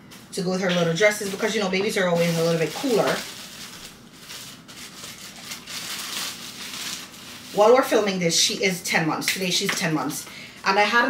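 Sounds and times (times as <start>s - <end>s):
plastic packaging crinkling: 0.6s - 8.2s.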